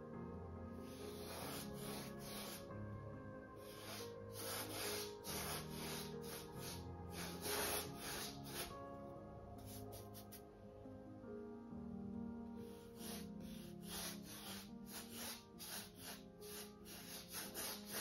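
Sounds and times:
soft background music: 0.0s - 18.0s
paintbrush strokes on canvas: 0.8s - 2.8s, 3.6s - 8.8s, 9.6s - 10.4s, 12.7s - 18.0s.

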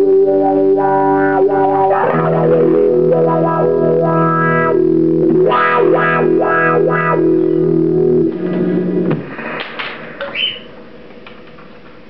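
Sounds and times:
distorted electric guitar: 0.0s - 10.8s.

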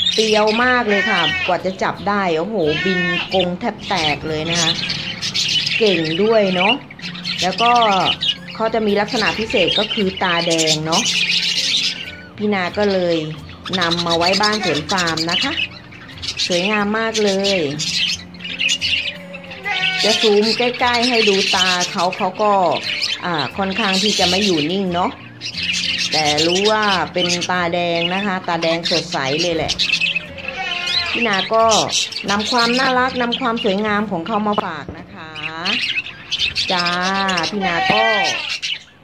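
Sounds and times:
budgerigars chirping: 0.0s - 39.0s.

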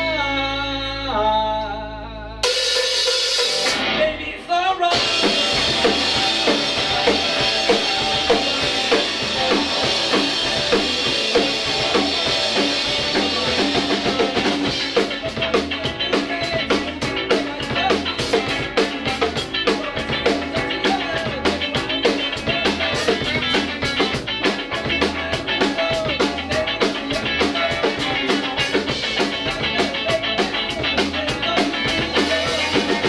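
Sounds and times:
live band playing reggae: 0.0s - 33.0s
drum rimshots and cymbals: 2.4s - 4.0s, 4.9s - 33.0s.

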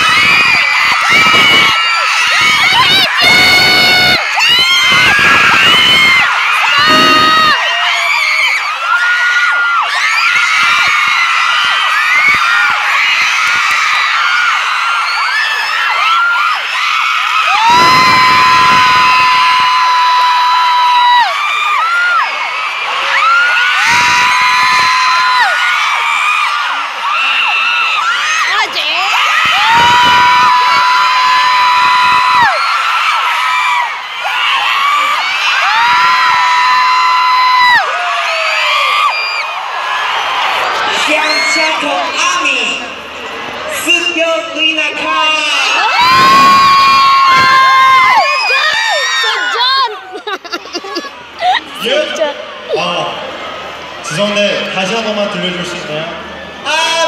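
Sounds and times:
long high-pitched screams: 0.0s - 39.6s, 45.4s - 50.0s
crowd screaming and cheering: 0.0s - 57.0s.

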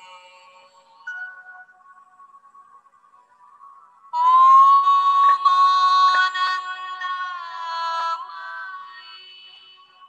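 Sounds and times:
soft music tones: 0.0s - 10.0s.

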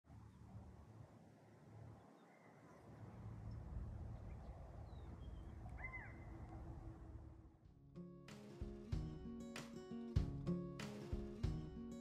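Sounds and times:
faint bird chirps: 4.2s - 6.6s
bird call: 4.9s - 6.4s.

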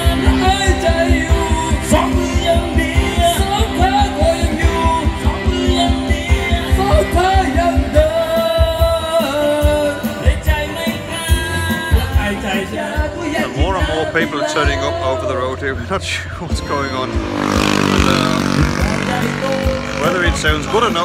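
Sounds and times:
backing track with bass beat: 0.0s - 15.0s, 16.4s - 21.0s
person singing karaoke: 0.0s - 21.0s.

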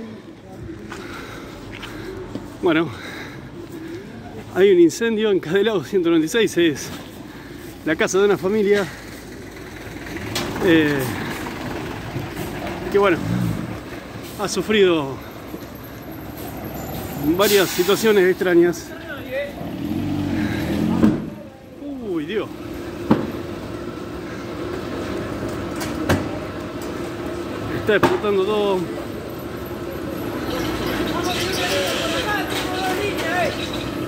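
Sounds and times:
fire engine idling: 7.0s - 12.9s.

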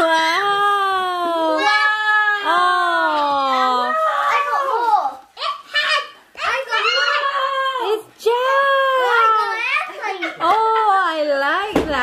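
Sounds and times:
children squealing and exclaiming: 1.5s - 2.6s, 3.2s - 8.0s.

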